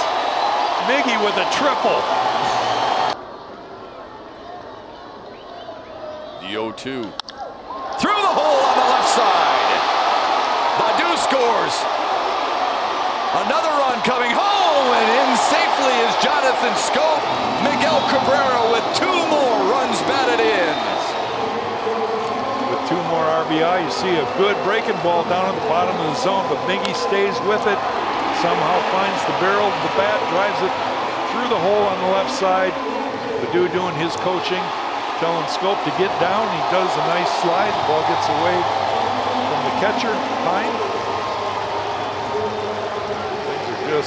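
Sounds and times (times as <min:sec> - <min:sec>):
ballpark crowd noise: 0:00.0 - 0:44.0
commentator talking: 0:13.4 - 0:21.1.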